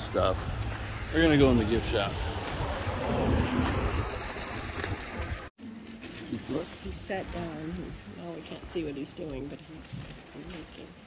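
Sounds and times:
wind on microphone: 0.0s - 5.5s.

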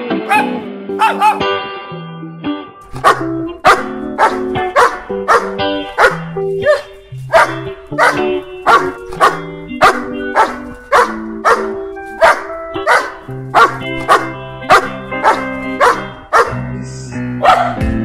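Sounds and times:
dog barks: 0.2s - 1.5s, 2.8s - 16.6s, 17.4s - 17.8s.

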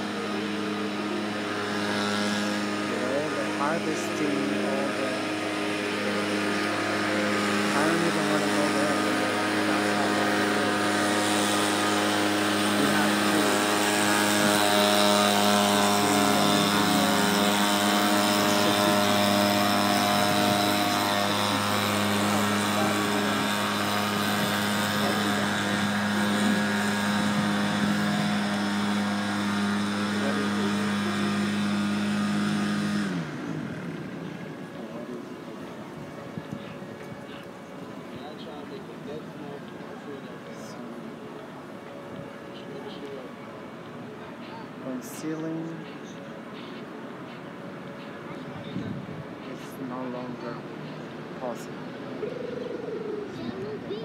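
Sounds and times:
large engine humming: 0.0s - 54.0s.

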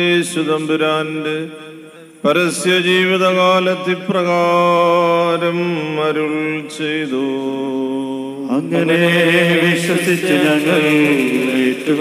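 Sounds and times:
person chanting: 0.0s - 12.0s.

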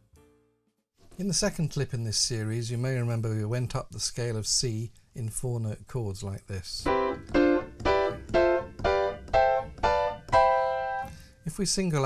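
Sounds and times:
piano playing rising chords: 6.8s - 11.1s.

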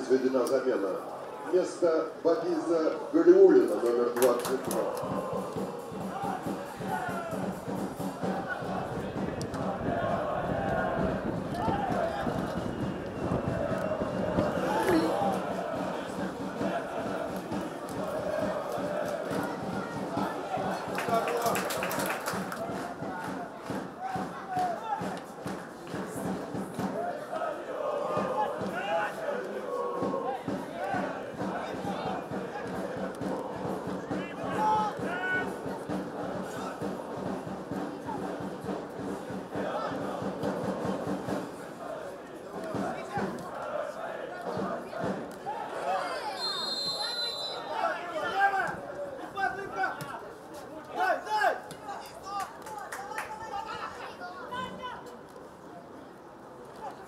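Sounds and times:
people shouting: 4.5s - 7.6s, 8.2s - 21.6s, 27.0s - 32.8s, 34.1s - 35.6s
referee's whistle blast: 46.3s - 47.8s.

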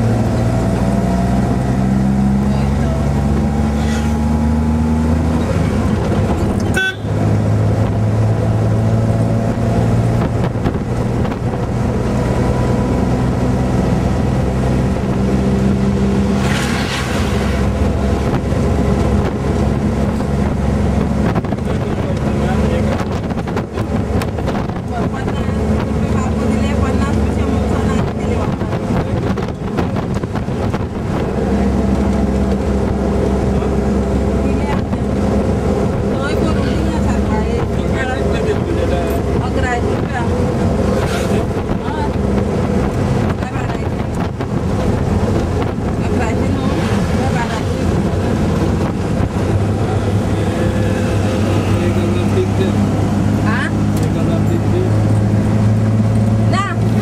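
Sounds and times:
car engine accelerating: 0.0s - 57.0s
passing truck rush: 0.0s - 57.0s.

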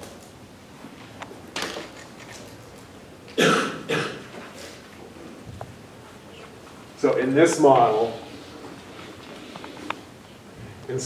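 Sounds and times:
person coughing: 3.4s - 4.3s.

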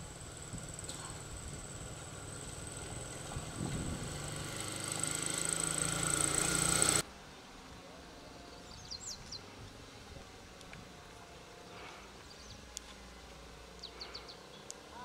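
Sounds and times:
motorcycle engine passing: 0.0s - 7.0s.

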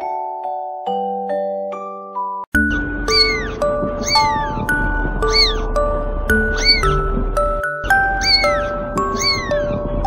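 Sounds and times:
background music: 2.0s - 10.0s
cat mewing: 3.1s - 7.0s, 7.9s - 9.9s.

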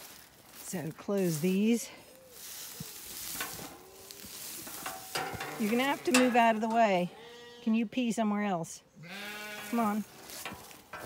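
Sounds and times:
grass rustling underfoot: 0.0s - 11.0s.

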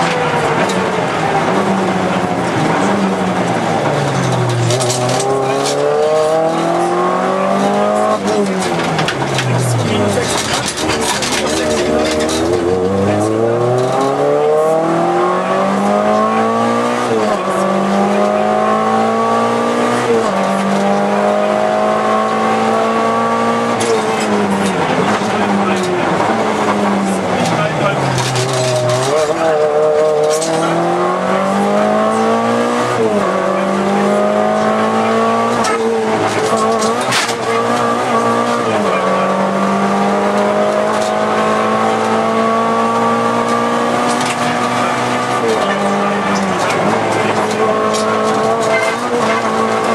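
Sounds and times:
car engine revving through gears: 0.0s - 49.9s.

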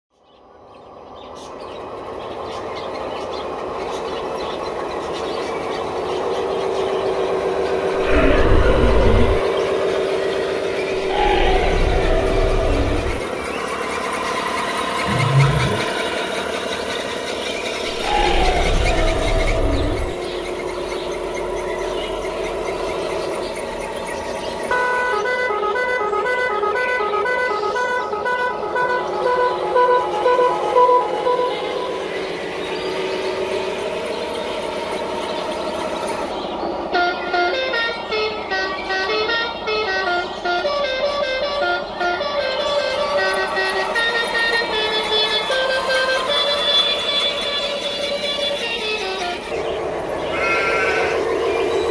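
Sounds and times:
truck engine rumbling: 0.9s - 38.2s, 41.8s - 51.9s
truck horn: 15.1s - 16.0s, 24.7s - 32.1s, 36.9s - 49.7s.

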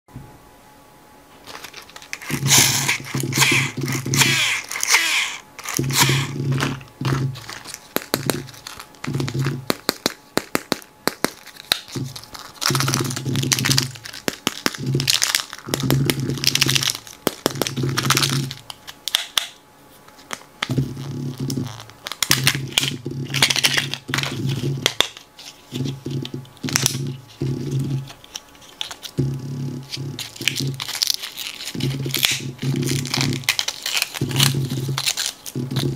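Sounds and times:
plastic wrappers crinkling and tearing: 1.4s - 29.2s, 29.9s - 35.9s.

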